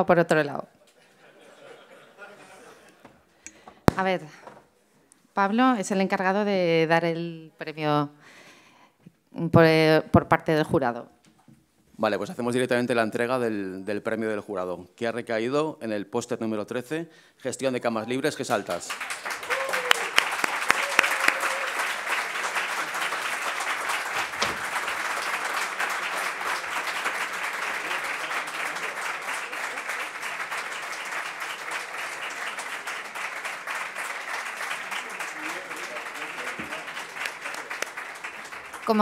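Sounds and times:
audience applauding: 18.4 - 39.0
faint voices: 35.0 - 37.8.

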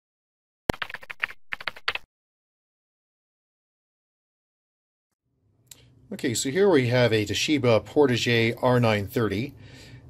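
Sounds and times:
keyboard typing: 0.7 - 2.1.

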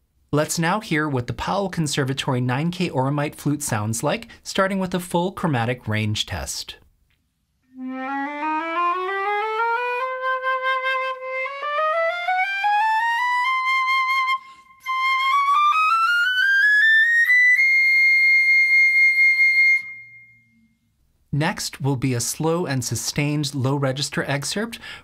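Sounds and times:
flute playing chromatic scale: 7.7 - 20.6
short breath: 24.8 - 25.0.

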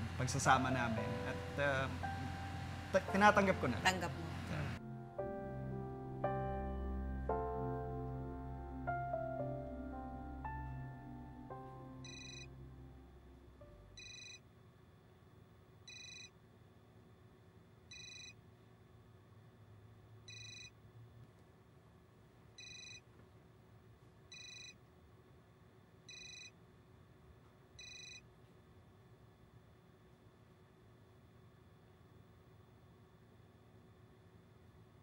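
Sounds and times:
soft piano music: 0.0 - 14.0
mobile phone ringing: 11.4 - 12.9, 14.0 - 14.4, 15.9 - 16.3, 17.9 - 18.4, 20.3 - 20.7, 22.6 - 23.0, 24.3 - 24.8, 26.1 - 26.5, 27.8 - 28.2.

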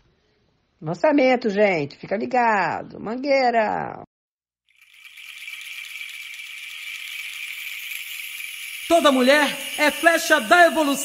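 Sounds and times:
percussion shaker rattling: 4.6 - 11.0.

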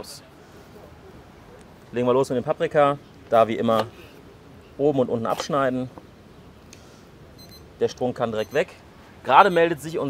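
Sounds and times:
thermometer alarm high beeps: 7.4 - 7.7, 8.4 - 8.7.

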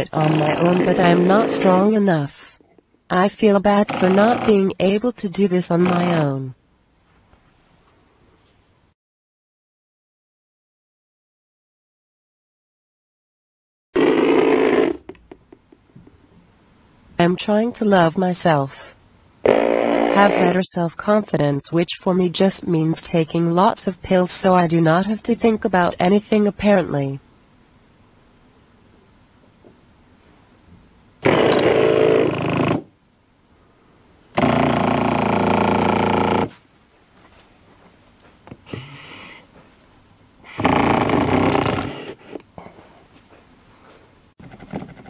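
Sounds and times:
recorded animal-like sound on loudspeaker: 0.0 - 2.4, 3.1 - 4.8, 5.7 - 6.5, 20.0 - 20.7.

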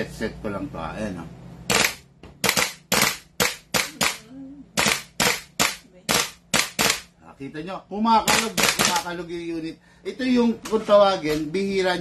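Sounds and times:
airsoft rifle shots cracking: 1.7 - 4.2, 4.8 - 7.1.

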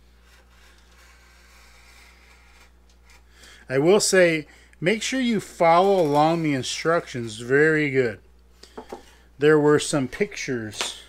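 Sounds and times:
hobby blade scratching balsa: 0.0 - 3.4, 5.1 - 7.4
low steady hum: 0.0 - 11.0.

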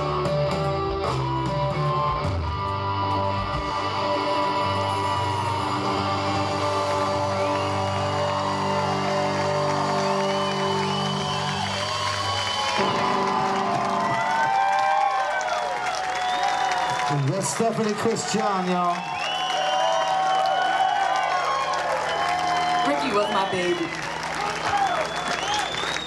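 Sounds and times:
rock band final chord: 0.0 - 15.2
audience whooping and cheering: 3.4 - 26.0.

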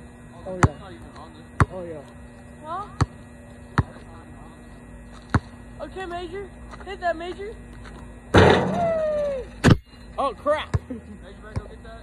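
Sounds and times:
steady low hum: 0.0 - 12.0
basketball bouncing on asphalt: 0.5 - 2.0, 2.7 - 4.2, 5.1 - 8.6, 10.6 - 11.8.

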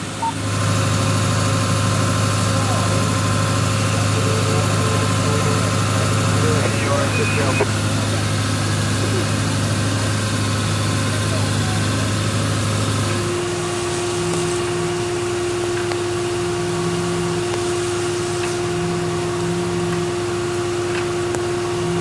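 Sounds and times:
engine idling: 0.0 - 22.0.

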